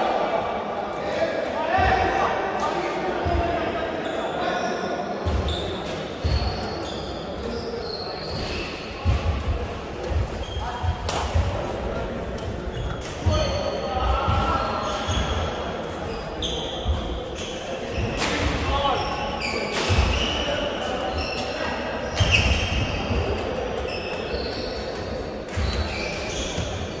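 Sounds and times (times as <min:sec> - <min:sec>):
shoes squeaking on court floor: 0:04.0 - 0:27.0.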